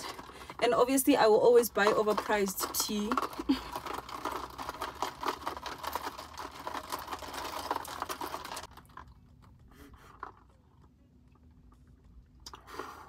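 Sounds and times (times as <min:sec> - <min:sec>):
straw rattling ice in cup: 0:00.0 - 0:10.9.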